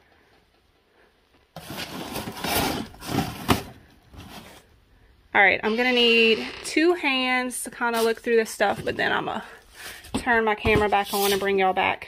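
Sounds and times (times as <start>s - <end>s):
wooden signs scraping in cardboard box: 1.6s - 3.6s.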